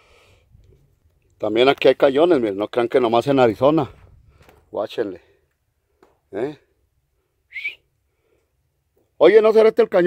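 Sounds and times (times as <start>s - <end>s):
high whistle-like chirp: 7.5s - 7.9s.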